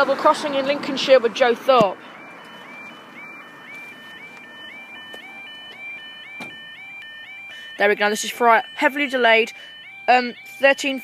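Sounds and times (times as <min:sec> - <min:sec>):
level crossing alarms: 0:00.3 - 0:11.0.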